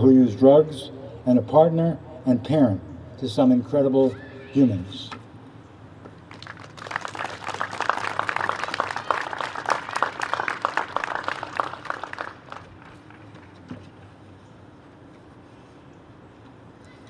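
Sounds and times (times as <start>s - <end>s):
audience applauding: 6.3s - 13.3s.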